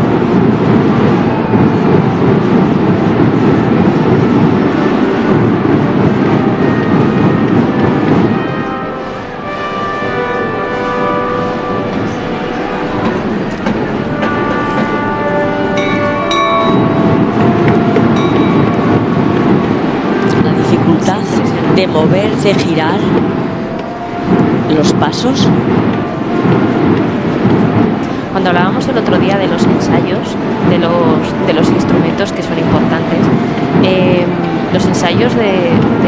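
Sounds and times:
brass playing held chords: 5.0s - 21.6s.

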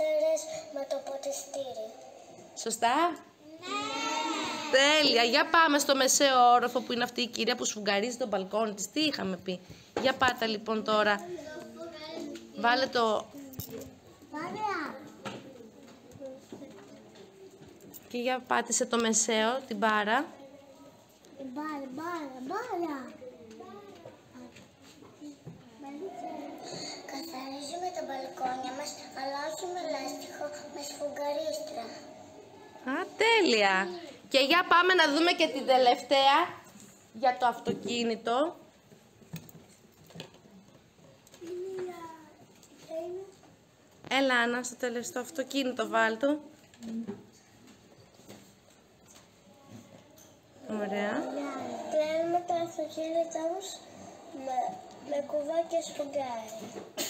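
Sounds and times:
faint scattered small noises: 0.0s - 57.0s.

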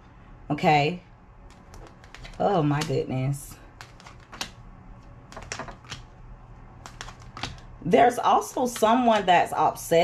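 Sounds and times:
cards clicking and tapping: 1.5s - 3.0s, 3.7s - 4.6s, 5.2s - 6.2s, 6.8s - 7.7s.

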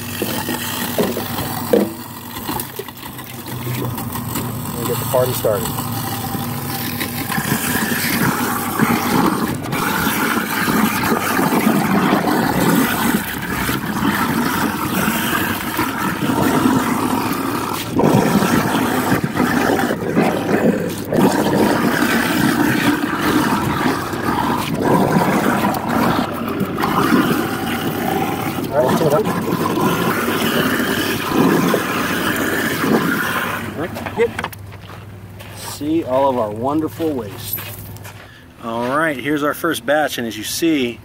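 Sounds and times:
garbage disposal grinding scraps: 0.0s - 34.6s.

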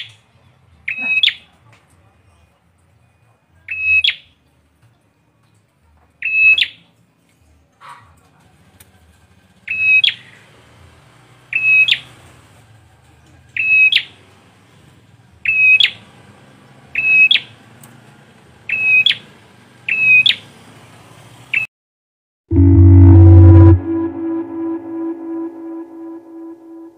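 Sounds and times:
music: 22.5s - 26.9s.

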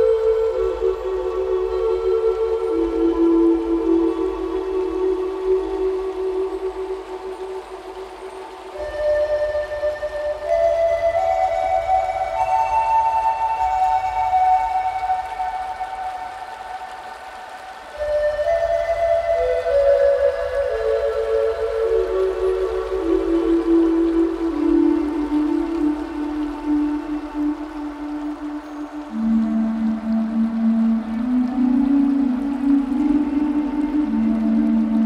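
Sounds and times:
flute playing slow notes: 0.0s - 35.0s.

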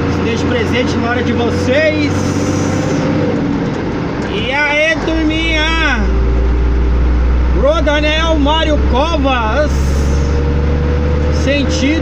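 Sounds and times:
road and tyre noise: 0.0s - 12.0s
vehicle engine drone: 0.0s - 12.0s.

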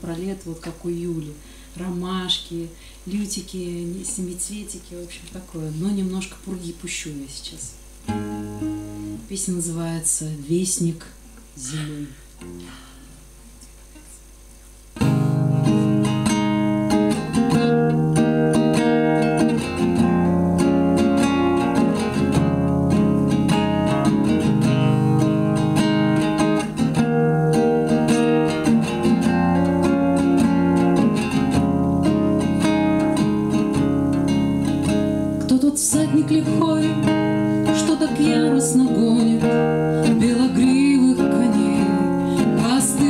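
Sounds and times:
acoustic guitar playing: 7.8s - 10.2s, 11.6s - 14.2s, 14.9s - 43.0s.

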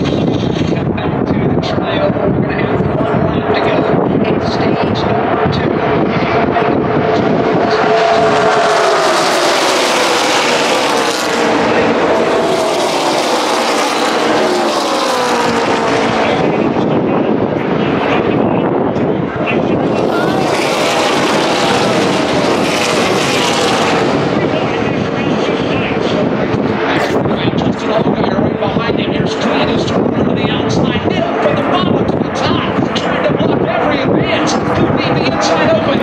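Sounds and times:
race cars passing at speed: 0.0s - 36.0s.

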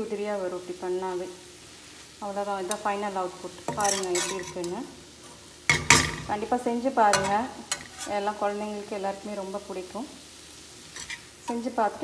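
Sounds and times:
woman talking: 0.0s - 1.3s, 2.2s - 4.9s, 6.3s - 10.2s, 11.5s - 12.0s
spoon scraping pan: 2.6s - 3.0s, 3.6s - 6.5s, 7.1s - 8.4s, 10.8s - 11.7s
metal spoon stirring in pan: 2.6s - 8.4s, 10.8s - 11.8s.

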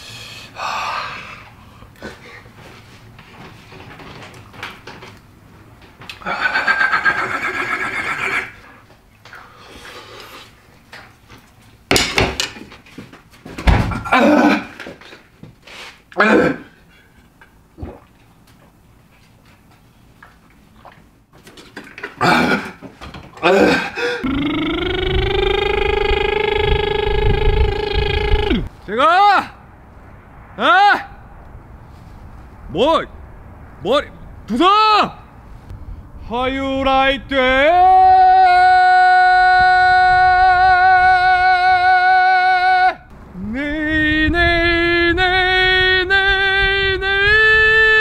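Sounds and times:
man grunting: 23.4s - 28.7s
man holding a vocal note: 24.1s - 28.7s.

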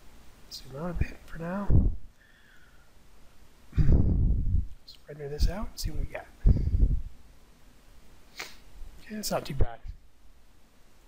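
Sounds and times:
loud breathy exhale: 8.3s - 8.7s.

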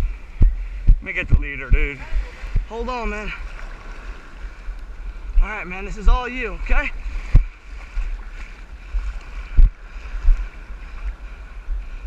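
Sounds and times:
low rumbling buffets on microphone: 0.0s - 12.0s
sea water sloshing: 1.8s - 5.4s, 6.2s - 12.0s.

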